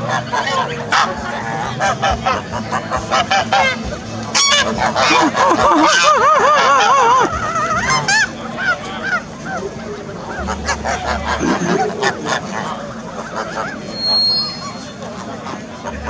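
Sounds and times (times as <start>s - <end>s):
geese honking: 0.0s - 16.0s.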